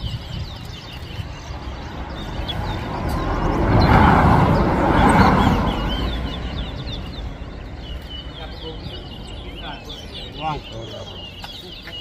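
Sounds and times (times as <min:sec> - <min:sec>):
finches chirping: 0:00.0 - 0:12.0
vehicle passing: 0:01.0 - 0:11.3.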